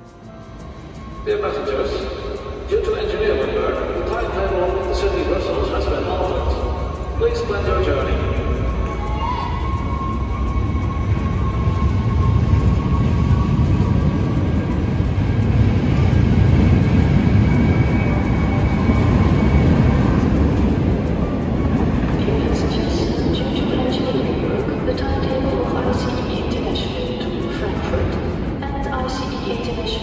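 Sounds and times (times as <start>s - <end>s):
train wheels rumbling on rail: 0.0s - 30.0s.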